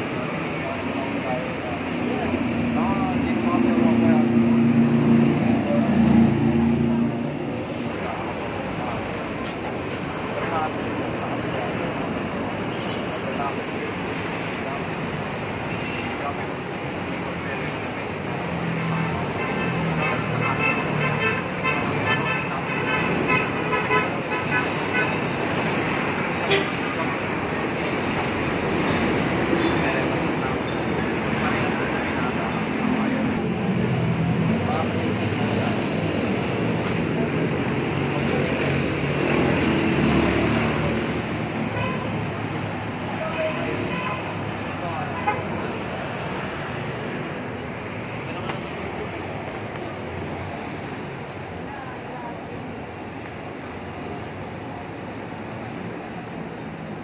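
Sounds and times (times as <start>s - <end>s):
vehicles passing: 0.0s - 57.0s
car horn tooting: 26.5s - 26.8s.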